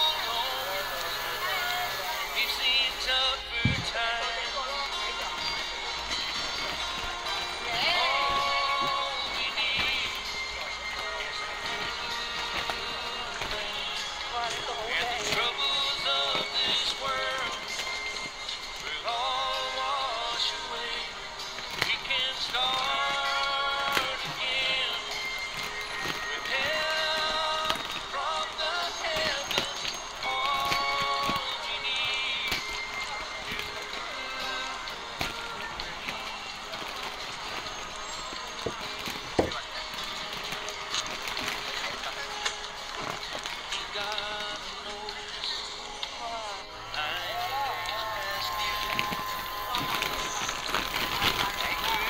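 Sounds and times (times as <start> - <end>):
music with vocal melody: 0.0 - 52.0
plastic bags crinkling: 0.0 - 52.0.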